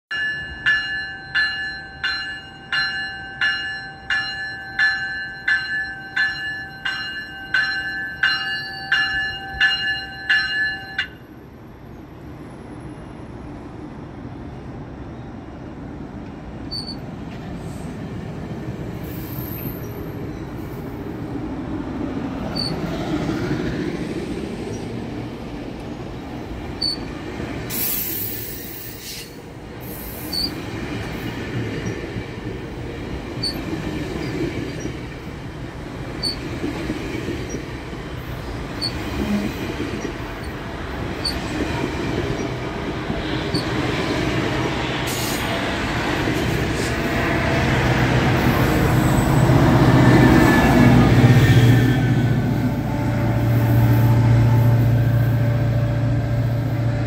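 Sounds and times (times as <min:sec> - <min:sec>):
train bell ringing: 0:00.1 - 0:11.4
train coaches rumbling and clattering: 0:00.1 - 0:57.0
train wheel squeals: 0:16.7 - 0:17.9, 0:18.9 - 0:21.0, 0:22.4 - 0:23.0, 0:26.8 - 0:32.0, 0:33.4 - 0:35.0, 0:36.1 - 0:36.5, 0:37.4 - 0:41.6, 0:43.2 - 0:44.0, 0:45.0 - 0:45.7, 0:48.4 - 0:56.8.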